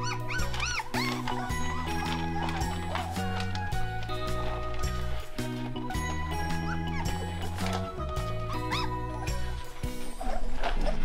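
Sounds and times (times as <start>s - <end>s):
background music with bass notes: 0.0s - 11.0s
puppies whimpering: 0.0s - 11.0s.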